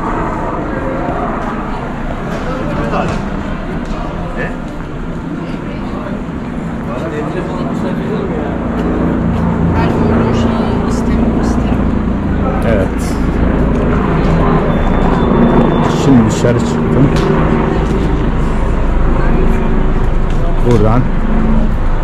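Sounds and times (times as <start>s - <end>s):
passers-by talking: 0.0s - 22.0s
road traffic rumble: 0.0s - 22.0s.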